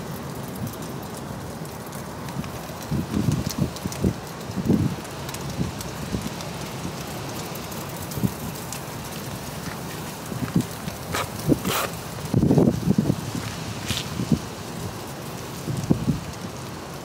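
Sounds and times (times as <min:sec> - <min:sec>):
wind gusting on microphone: 0:02.3 - 0:16.7.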